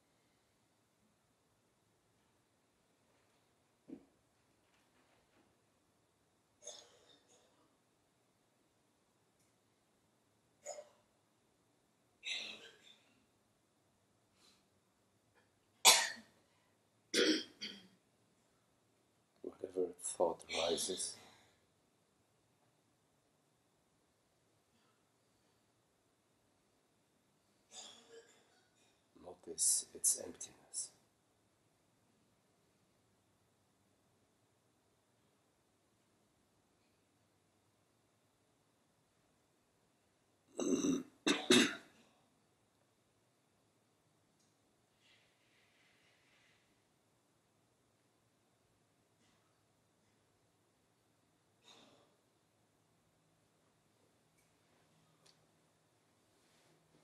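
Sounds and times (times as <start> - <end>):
person coughing: 17.2 - 17.9, 40.6 - 41.9.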